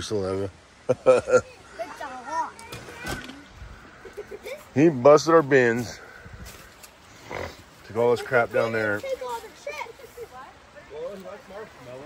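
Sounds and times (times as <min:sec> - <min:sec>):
faint children calling and chattering: 0:01.0 - 0:12.0.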